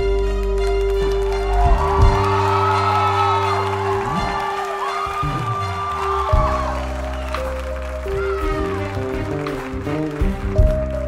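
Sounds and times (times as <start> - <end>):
bowed violins melody: 0.0 - 11.0.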